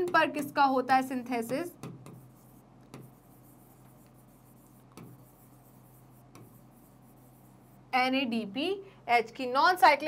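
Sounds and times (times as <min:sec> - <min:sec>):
low steady hum: 0:00.0 - 0:10.0
stylus rubbing on glass screen: 0:01.3 - 0:08.0.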